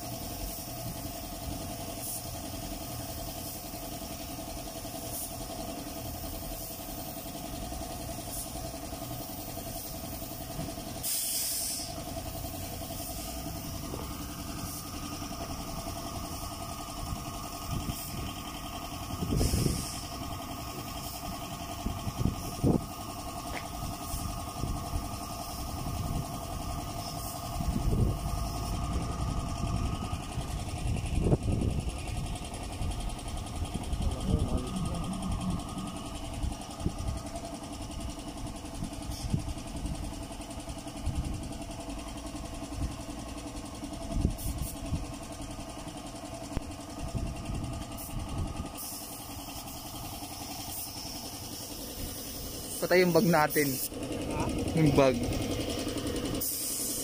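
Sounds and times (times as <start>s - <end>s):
air compressor running: 0.0s - 57.0s.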